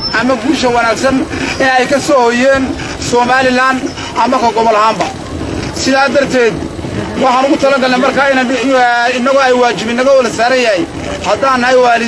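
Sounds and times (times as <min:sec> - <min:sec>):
man speaking into microphone: 0:00.1 - 0:12.0.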